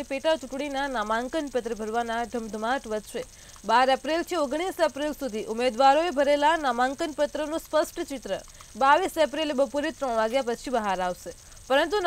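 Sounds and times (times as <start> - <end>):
woman reading the news: 0.0 - 12.0.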